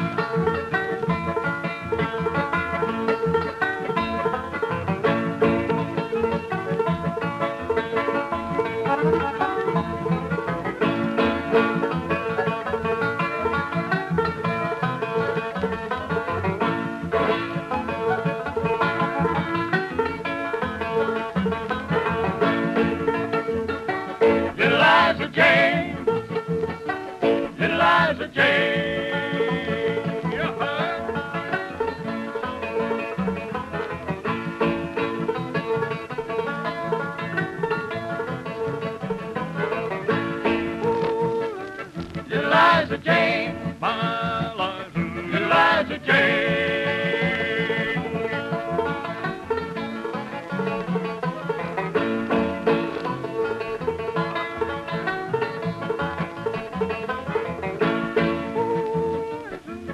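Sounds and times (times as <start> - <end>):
fast banjo instrumental: 0.0 - 59.9.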